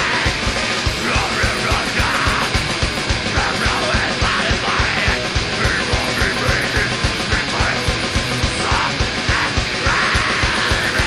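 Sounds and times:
distorted guitars and bass: 0:00.0 - 0:11.0
fast kick drum: 0:00.0 - 0:11.0
yelled vocals: 0:00.0 - 0:11.0.

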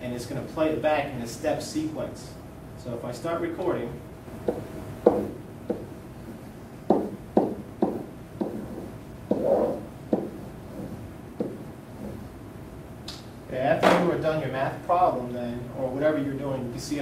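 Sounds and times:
pen knocking on whiteboard: 0:04.4 - 0:05.9, 0:06.9 - 0:12.2.

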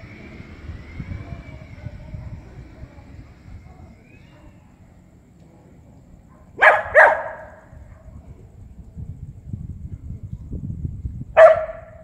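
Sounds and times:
dog barking: 0:06.3 - 0:08.0, 0:11.4 - 0:12.0.

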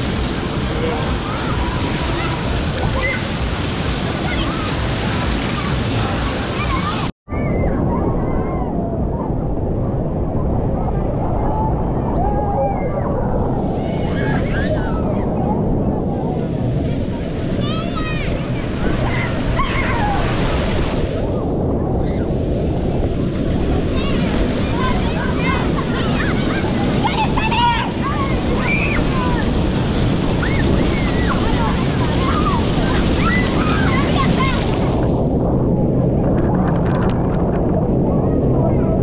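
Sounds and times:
water splashing from fountain: 0:00.0 - 0:07.0, 0:16.5 - 0:38.0
children shouting and squealing: 0:00.8 - 0:03.4, 0:04.0 - 0:09.3, 0:11.4 - 0:22.4, 0:23.9 - 0:35.1.

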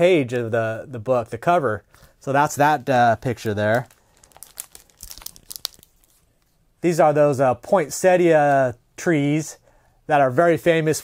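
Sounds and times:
paper prints rustling: 0:02.5 - 0:06.6.

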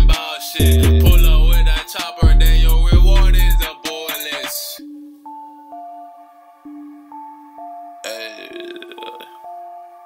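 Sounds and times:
hip hop beat: 0:00.0 - 0:10.0
loud burp: 0:08.0 - 0:09.5.

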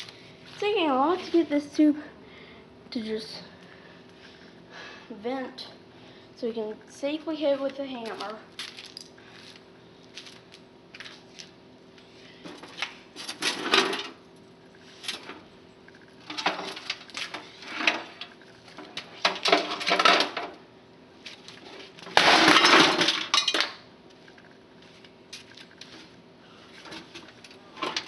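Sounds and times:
broken pieces rattling inside monitor: 0:15.0 - 0:20.6, 0:21.5 - 0:24.5.

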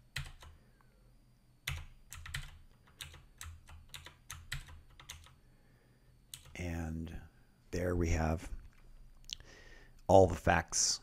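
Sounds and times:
keyboard keys clicking: 0:00.1 - 0:00.6, 0:01.7 - 0:05.4, 0:06.3 - 0:06.6.

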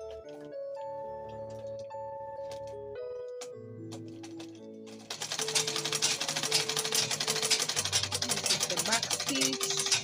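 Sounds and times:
background music: 0:00.0 - 0:10.0
sewing machine clattering: 0:03.9 - 0:10.0.

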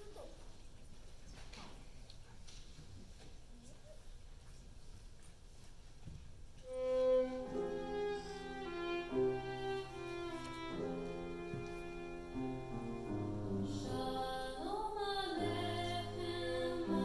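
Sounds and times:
violin slow melody: 0:06.6 - 0:13.7
sustained accompanying notes: 0:06.7 - 0:13.7.

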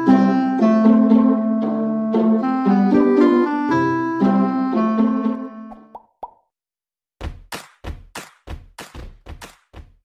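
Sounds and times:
background piano music: 0:00.0 - 0:05.9.

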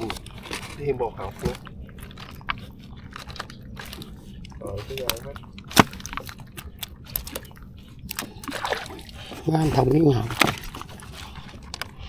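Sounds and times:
fish net rustling and clicking: 0:00.0 - 0:12.0.

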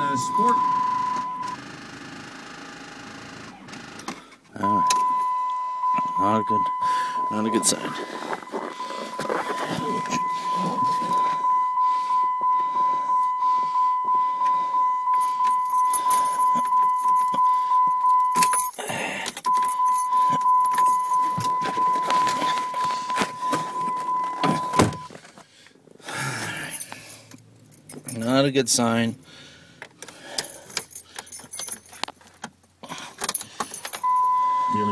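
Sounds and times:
van engine cranking on starter: 0:00.0 - 0:05.2
steady high whine: 0:04.7 - 0:18.5.

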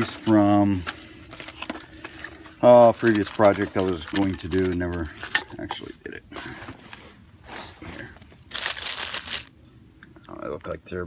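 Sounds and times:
metal clamps clinking: 0:03.0 - 0:05.8.

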